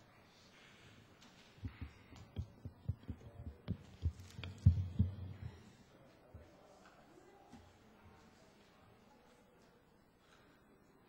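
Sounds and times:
dull low thumps and knocks: 1.6s - 5.7s.

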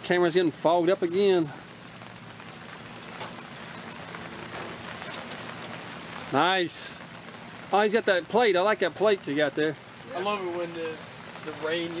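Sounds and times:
food sizzling on a grill: 0.0s - 12.0s.

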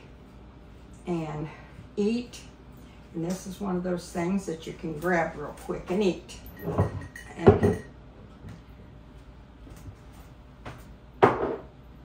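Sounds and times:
glass bowl knocking on counter: 11.2s - 11.7s.

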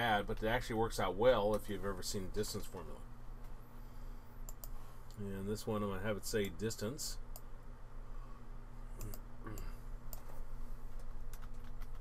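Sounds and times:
low electrical hum: 0.0s - 12.0s
computer mouse clicking: 4.5s - 4.8s, 10.1s - 12.0s.

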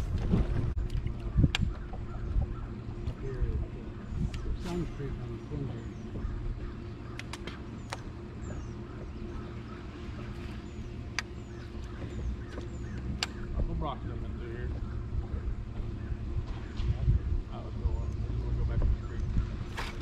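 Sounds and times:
electric trolling motor humming: 0.0s - 20.0s
sharp clicks: 7.1s - 8.1s, 11.1s - 13.4s.

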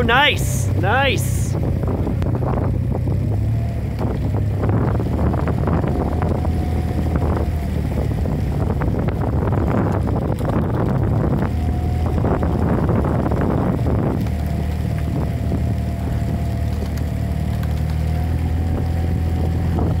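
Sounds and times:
outboard engine running: 0.0s - 20.0s
wind on microphone: 0.0s - 20.0s.

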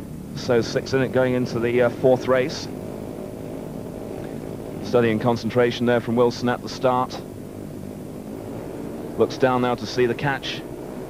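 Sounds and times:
motorcycle engines droning: 0.0s - 11.0s.

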